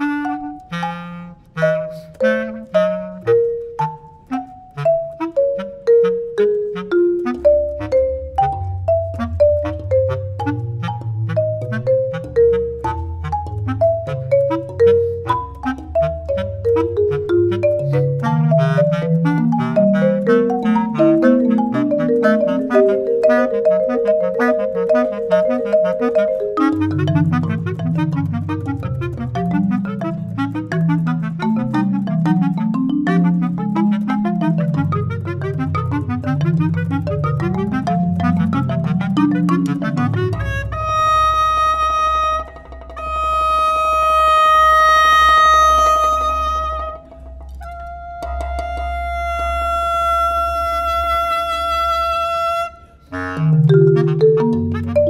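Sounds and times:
marimba mallet notes: 0.0s - 49.4s, 53.4s - 55.0s
bass clarinet: 0.0s - 55.0s.

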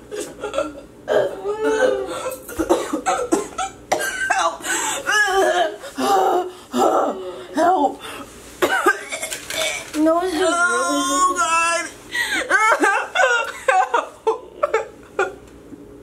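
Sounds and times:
person crying out: 0.4s - 2.5s, 4.3s - 7.9s, 10.4s - 14.9s
person coughing: 0.4s - 5.8s, 8.6s - 9.8s.

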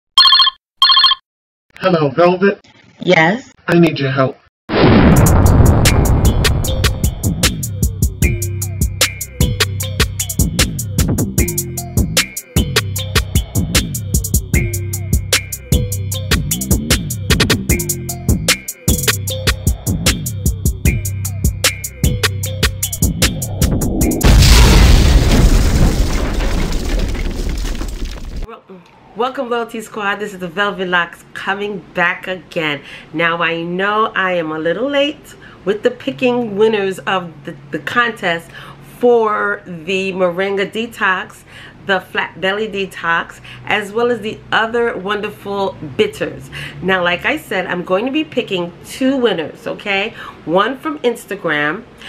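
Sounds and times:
telephone bell ringing: 0.2s - 1.2s
deep boom sound effect: 4.7s - 7.5s, 22.9s - 27.6s
music beat: 5.9s - 24.2s.

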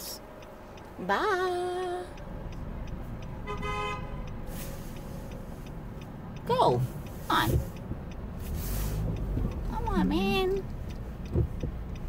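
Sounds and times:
traffic and engine rumble: 0.0s - 12.0s
car horn toot: 3.4s - 4.4s.

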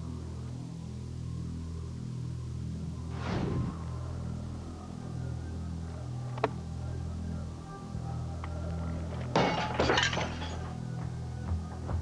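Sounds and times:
low steady drone: 0.0s - 12.0s
glass shards clinking: 9.4s - 10.7s
glass smashing: 9.4s - 10.7s.

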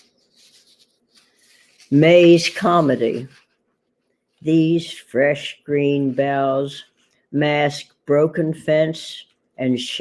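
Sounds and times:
faint soft noises: 0.0s - 4.8s
woman reading aloud: 1.8s - 3.4s, 4.4s - 10.0s.

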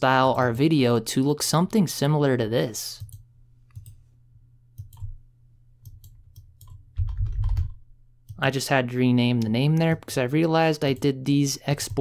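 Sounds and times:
faint low hum: 0.0s - 12.0s
computer mouse clicks: 4.8s - 5.2s
keyboard keys clicking: 5.8s - 8.4s.

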